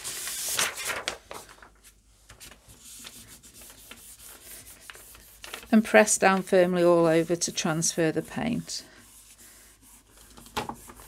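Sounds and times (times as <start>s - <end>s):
hands brushing on paper: 1.8s - 11.0s.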